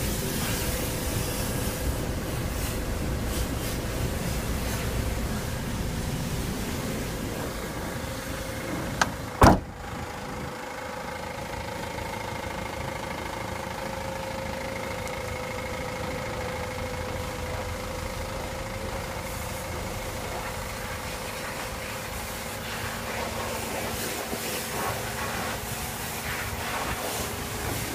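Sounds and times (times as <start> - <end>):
van engine idling: 0.0 - 27.9
van door slamming: 8.7 - 10.0
door click: 9.0 - 9.7.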